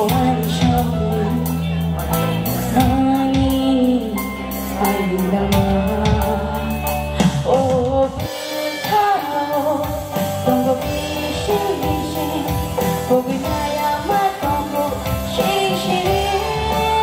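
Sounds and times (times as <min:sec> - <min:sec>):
band music with drums and guitar: 0:00.0 - 0:17.0
woman singing into microphone: 0:00.0 - 0:17.0.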